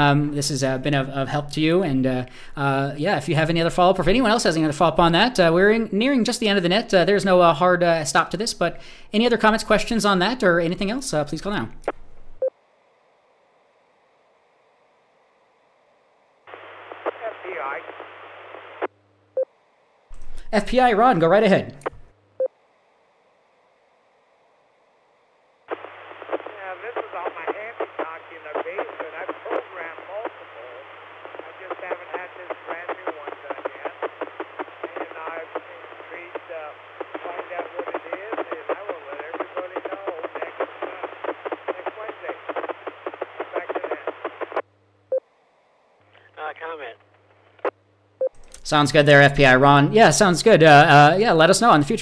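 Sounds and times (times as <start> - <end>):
person talking over radio: 17.0 - 18.0, 26.3 - 44.3, 46.2 - 47.0.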